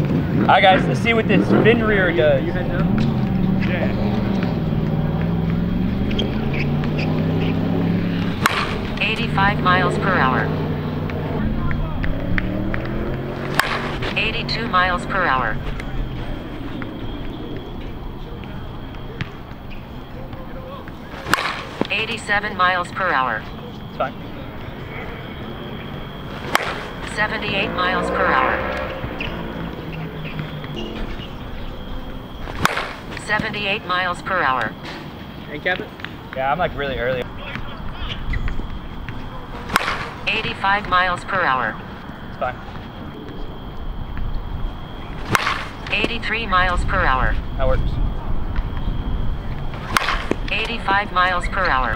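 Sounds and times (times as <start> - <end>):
bat striking softball: 8.3 - 9.2, 12.0 - 14.3, 21.1 - 22.2, 26.2 - 27.6, 32.2 - 33.4, 38.5 - 40.5, 45.2 - 46.2, 49.7 - 50.8.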